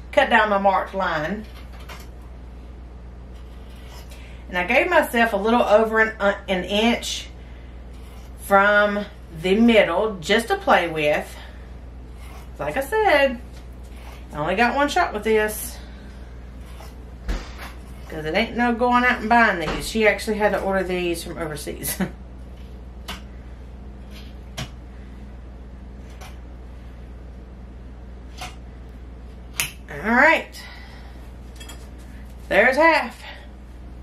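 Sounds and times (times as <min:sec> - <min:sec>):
steady low hum: 0:00.0 - 0:34.0.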